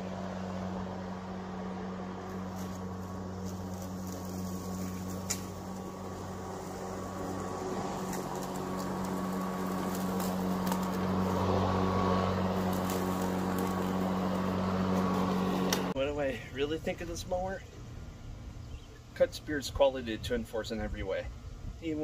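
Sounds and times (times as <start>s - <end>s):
lawn mower motor humming: 0.0s - 16.0s.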